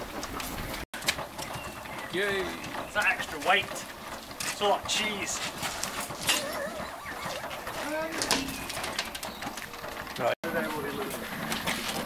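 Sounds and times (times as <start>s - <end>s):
knocks of hoses and metal couplings: 0.0s - 12.0s.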